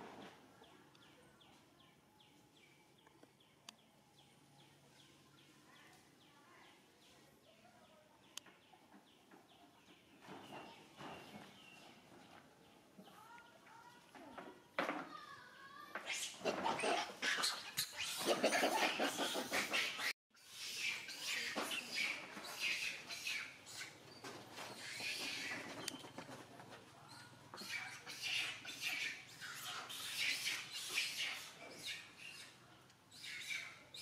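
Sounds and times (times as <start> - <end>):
harsh animal calls: 16.0 - 24.0.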